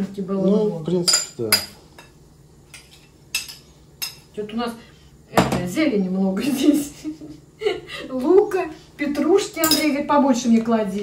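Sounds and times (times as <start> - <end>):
spoon clinking against bowl: 9.6 - 9.9.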